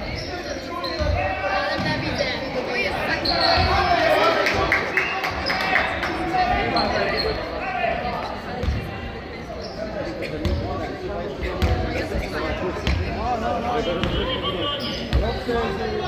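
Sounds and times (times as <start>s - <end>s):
players' voices echoing: 0.0s - 16.0s.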